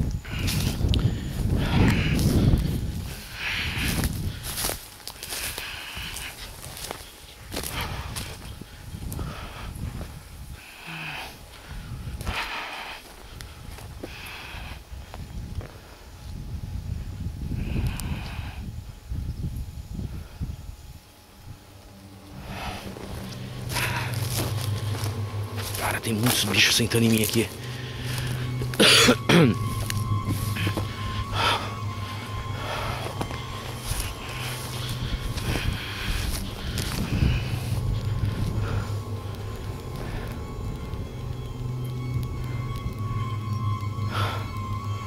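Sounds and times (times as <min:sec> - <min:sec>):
footsteps through tall grass: 0:00.0 - 0:15.8, 0:21.0 - 0:45.0
music: 0:21.2 - 0:45.0
grass stalks swishing: 0:22.2 - 0:40.3.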